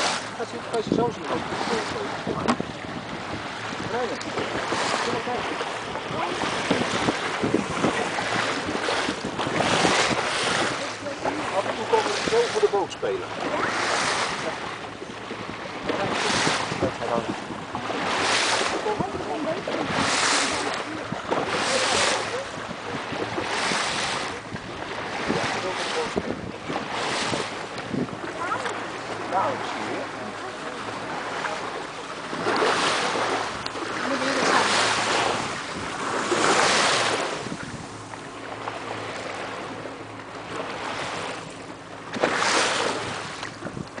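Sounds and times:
wind on microphone: 0.0s - 12.6s, 13.4s - 39.8s, 40.5s - 44.0s
water rushing along boat hull: 0.0s - 44.0s.

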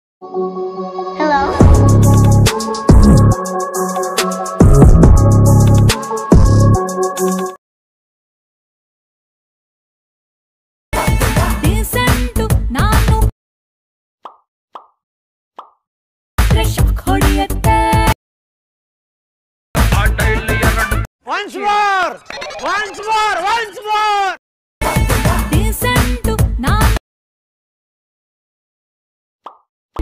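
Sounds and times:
music: 0.2s - 7.6s, 11.0s - 13.3s, 16.4s - 18.2s, 19.8s - 21.1s, 24.8s - 27.0s.

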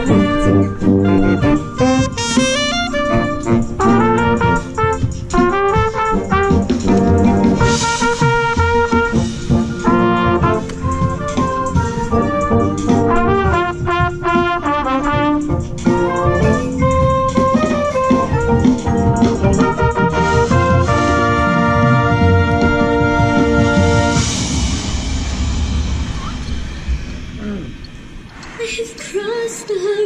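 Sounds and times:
trumpet short quick notes: 0.0s - 24.5s
marching band brass music: 0.0s - 26.4s.

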